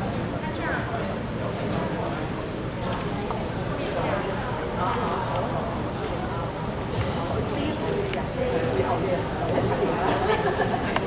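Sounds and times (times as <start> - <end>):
chatter of many people: 0.0 - 11.0.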